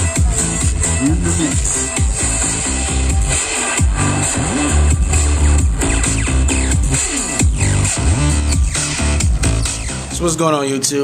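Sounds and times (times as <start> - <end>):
electronic dance music: 0.0 - 10.6.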